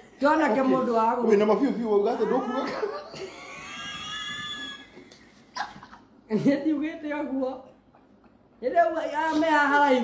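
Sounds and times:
man's high-pitched squealing laugh: 2.1s - 5.0s.

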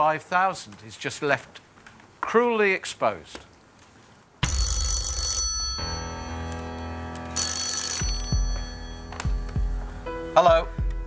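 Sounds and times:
telephone bell ringing: 4.4s - 9.4s.

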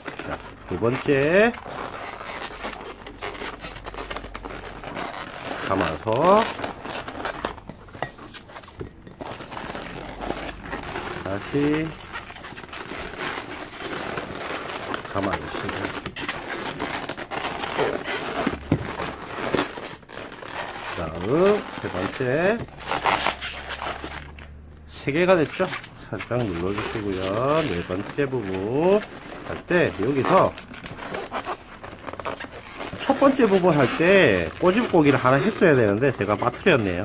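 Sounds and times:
balloons rubbing together: 0.0s - 37.0s.

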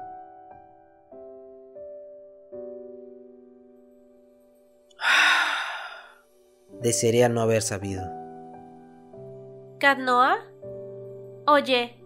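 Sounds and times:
person sighing: 5.0s - 6.2s.

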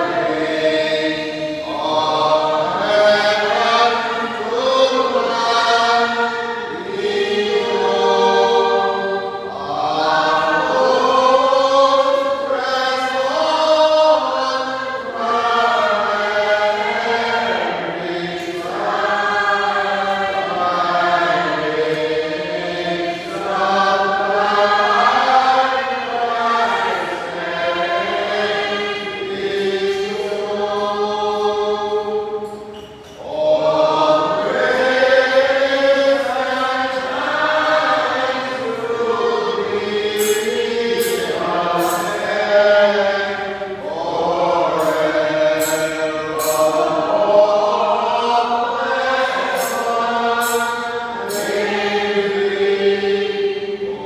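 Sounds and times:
congregation and choir singing hymn: 0.0s - 54.0s.

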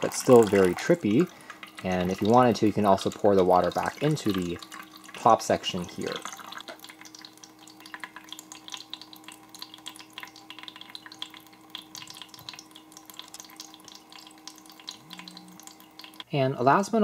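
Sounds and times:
water dripping and splashing: 0.0s - 16.3s
faint steady hum: 0.0s - 17.0s.

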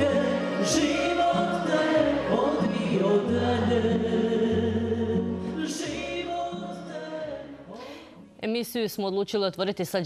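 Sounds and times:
string band playing: 0.0s - 7.1s.

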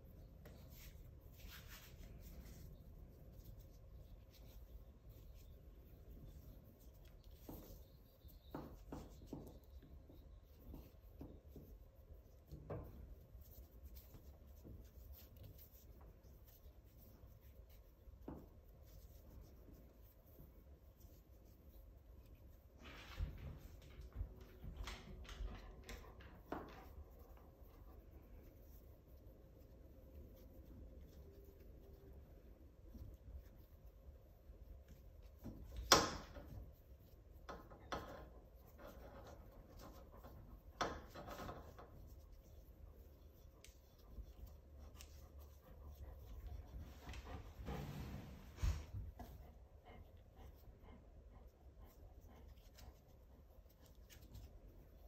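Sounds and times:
rope rubbing and rustling: 0.0s - 24.6s
cord rustling over rope: 0.0s - 49.5s.

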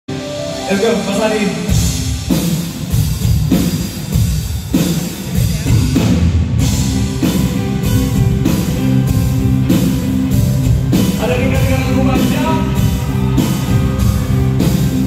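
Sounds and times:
drum kit: 0.1s - 15.0s
electric guitar: 6.6s - 15.0s.

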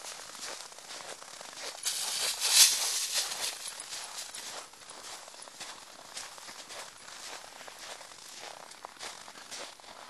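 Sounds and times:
footsteps crunching in snow: 0.0s - 10.0s.

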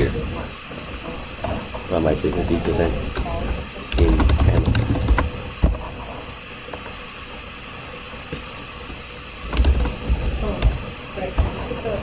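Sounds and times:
computer keyboard typing: 3.9s - 5.8s, 9.4s - 10.8s.

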